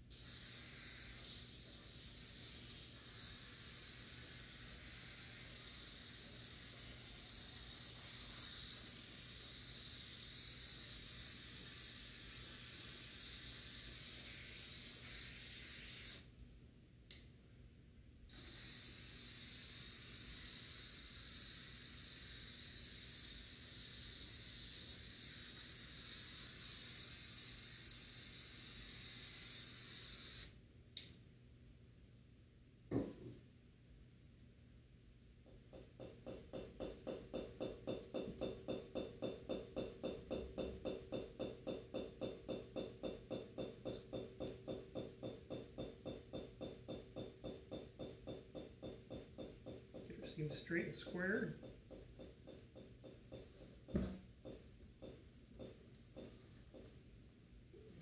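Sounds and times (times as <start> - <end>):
aerosol can spraying: 0.1 - 16.3, 18.3 - 30.6.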